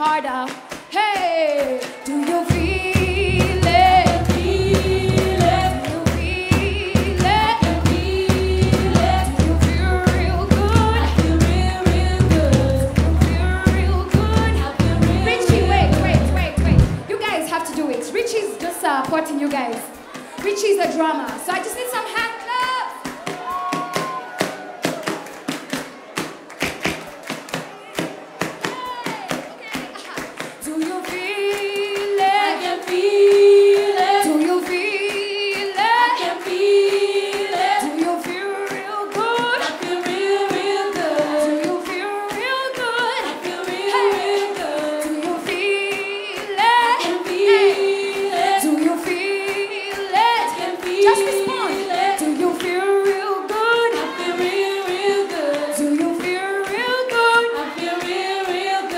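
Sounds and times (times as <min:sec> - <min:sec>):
women singing in harmony: 0:00.0 - 0:17.0, 0:30.6 - 0:58.9
rhythmic handclaps: 0:00.0 - 0:58.9
frame drum beaten with stick: 0:02.4 - 0:17.2, 0:46.6 - 0:52.2.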